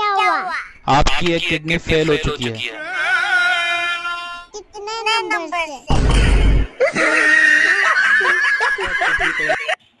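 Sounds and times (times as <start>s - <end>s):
child laughing and squealing: 2.8s - 4.3s, 6.8s - 8.5s
rumbling noise burst: 5.9s - 6.8s.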